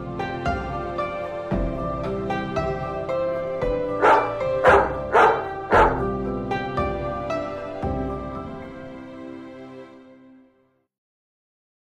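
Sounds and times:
gentle background music: 0.0s - 10.9s
dog barking: 4.0s - 6.2s.

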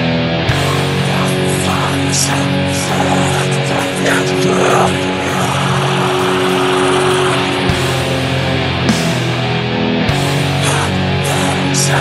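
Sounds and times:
distorted electric guitar drone: 0.0s - 12.0s.

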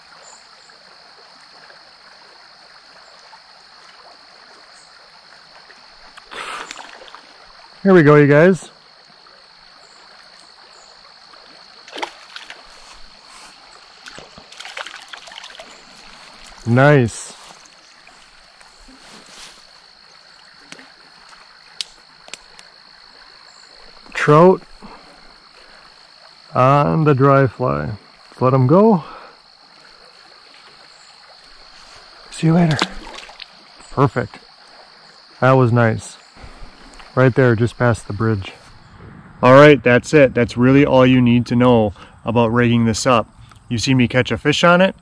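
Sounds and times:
frogs and insects trilling: 0.0s - 45.0s
fish splashing in stream: 5.6s - 7.7s, 11.3s - 16.6s, 29.6s - 35.0s, 36.4s - 37.2s
faint hiss: 6.0s - 9.0s, 14.8s - 42.8s
light ticks: 20.6s - 22.7s.

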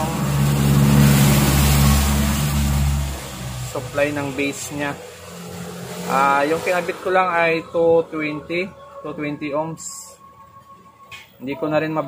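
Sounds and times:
motor droning: 0.0s - 9.6s.

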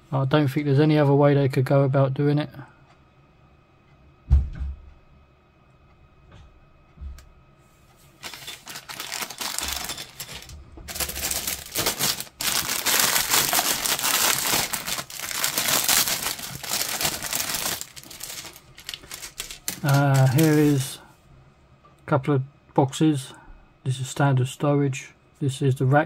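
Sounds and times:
plastic bags crinkling: 8.2s - 21.0s.

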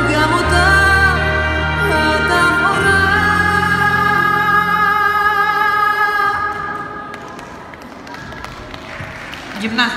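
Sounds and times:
voices murmuring in echoing hall: 0.8s - 9.9s.

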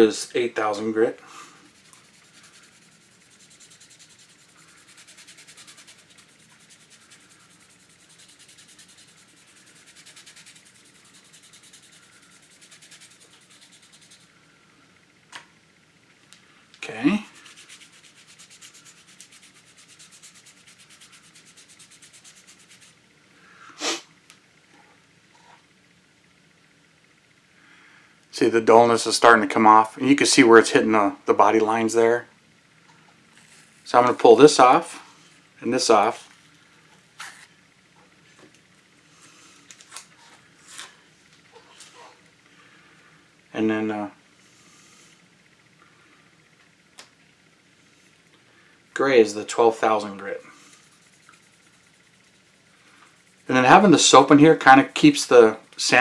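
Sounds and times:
sanding pad rubbing: 1.7s - 14.3s, 17.2s - 23.0s.

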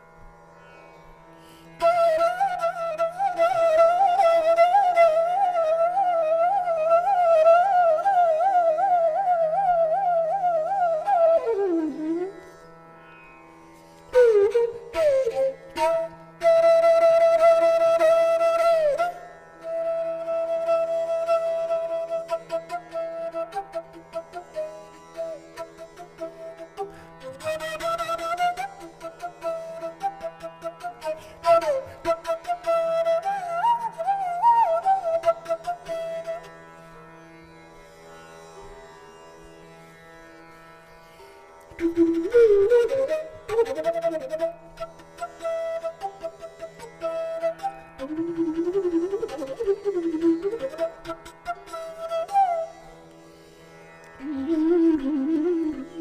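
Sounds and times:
bamboo flute melody: 1.8s - 12.5s, 14.1s - 36.5s, 41.7s - 52.8s, 54.2s - 56.0s.

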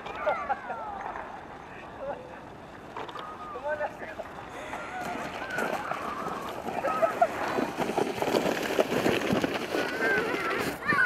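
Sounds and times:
children calling out: 0.0s - 2.0s, 3.1s - 3.6s, 4.5s - 7.8s, 9.7s - 11.0s.

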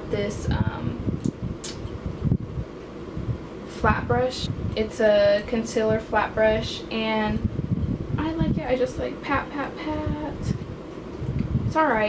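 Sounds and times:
electric fan running: 0.0s - 12.0s.

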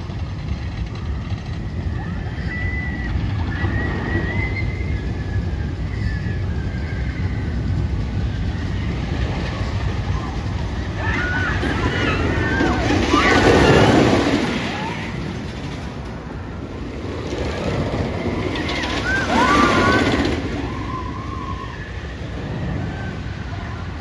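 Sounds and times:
riders screaming and yelling: 0.0s - 24.0s
roller coaster rumbling on track: 0.0s - 24.0s.

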